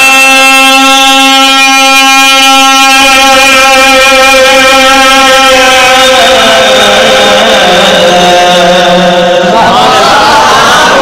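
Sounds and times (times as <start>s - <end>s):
man singing amplified: 0.0s - 11.0s.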